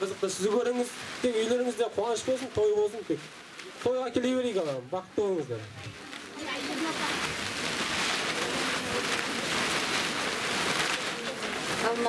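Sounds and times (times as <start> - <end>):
murmur of voices: 4.7 - 12.0.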